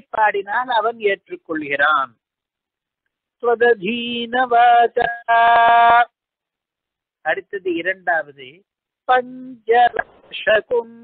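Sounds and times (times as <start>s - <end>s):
man chanting: 3.4s - 6.2s, 7.2s - 11.0s.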